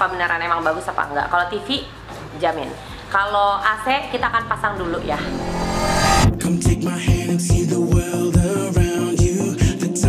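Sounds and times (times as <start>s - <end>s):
background music with kick drum: 0.0s - 4.6s, 6.2s - 10.0s
rising whoosh sweep: 4.4s - 7.4s.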